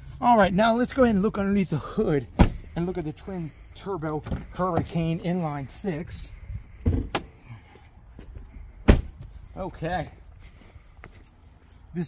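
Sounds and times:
car door shutting: 2.4s - 2.7s.

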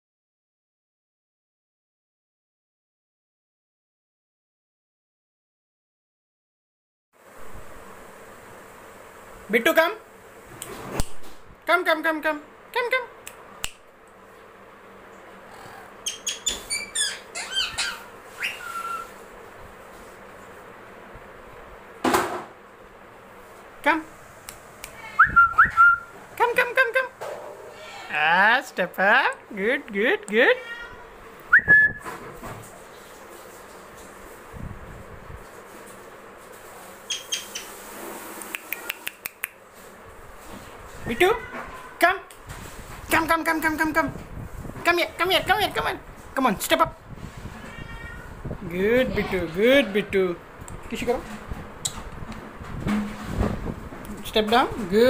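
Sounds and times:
parakeet chirping and squawking: 16.0s - 19.2s, 37.0s - 37.8s.

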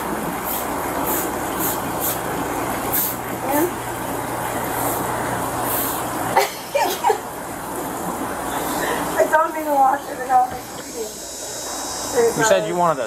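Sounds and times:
steady background hum: 0.0s - 13.0s
broom sweeping pavers: 5.7s - 6.0s.

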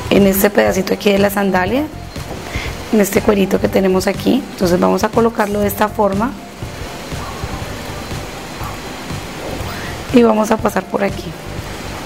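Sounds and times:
soft background music: 0.0s - 12.0s
steady hiss: 2.0s - 12.0s.

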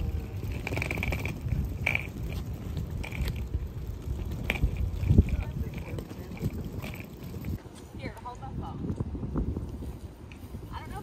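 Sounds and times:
suitcase wheels rumbling on concrete: 0.0s - 11.0s.

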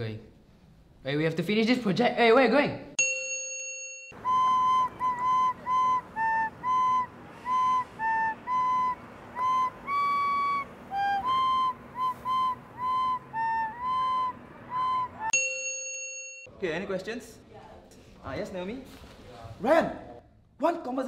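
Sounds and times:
recorder playing a tune: 4.2s - 15.4s
bright chime: 15.3s - 16.5s.

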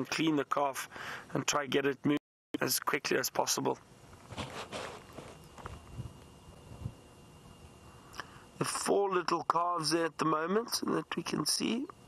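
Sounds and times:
faint rustling: 4.1s - 7.0s.

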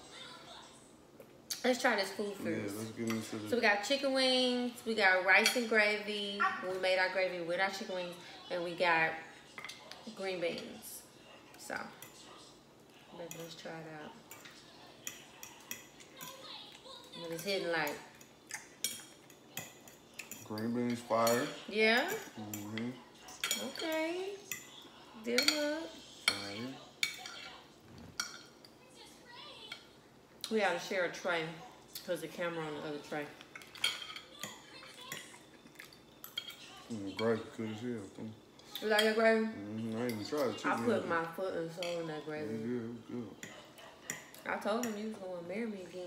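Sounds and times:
forks tapping and scraping on plates: 2.7s - 4.0s, 5.3s - 6.0s, 9.5s - 10.8s, 11.5s - 28.8s, 33.1s - 37.6s, 38.6s - 42.3s, 43.3s - 45.2s
forks clicking against plates: 33.4s - 36.7s.

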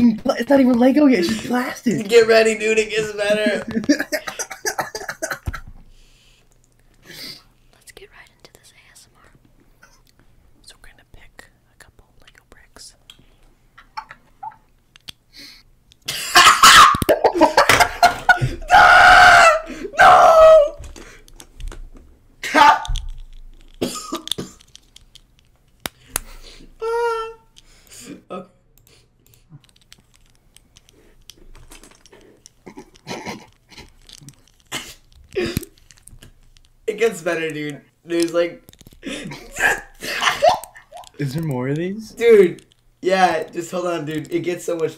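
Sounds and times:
plastic bricks clicking and rattling: 22.8s - 25.9s, 29.6s - 36.8s.

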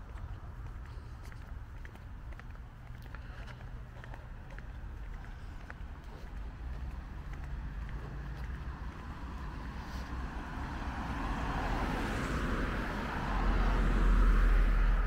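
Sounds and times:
car approaching: 0.0s - 15.0s.

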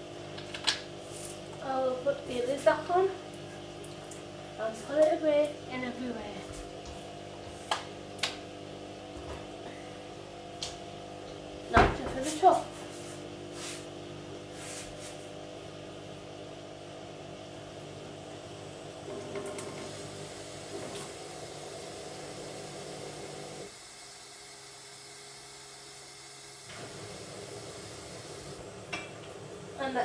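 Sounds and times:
steady hum: 0.0s - 30.0s.

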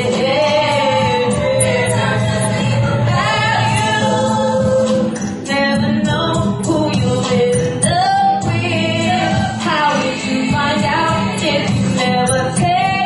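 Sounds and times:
musical accompaniment: 0.0s - 13.0s
woman singing into a microphone: 0.0s - 13.0s.

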